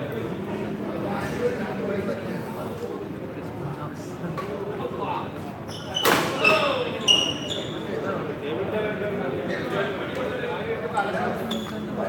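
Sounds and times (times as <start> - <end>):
spectators chattering: 0.0 - 12.0
court shoes squeaking: 5.6 - 8.0, 11.4 - 12.0.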